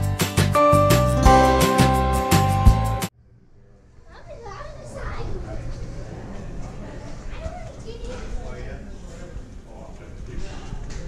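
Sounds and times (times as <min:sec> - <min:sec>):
children chattering and calling: 0:04.1 - 0:08.7.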